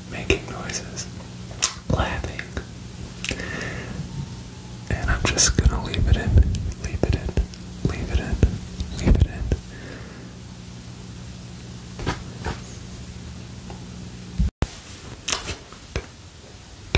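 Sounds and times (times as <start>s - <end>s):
person whispering: 0.0s - 1.1s, 1.8s - 2.7s, 4.8s - 9.6s.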